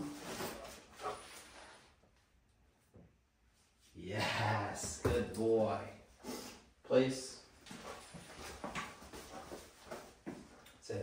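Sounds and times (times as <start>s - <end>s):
dog walking on concrete floor: 7.6s - 10.9s.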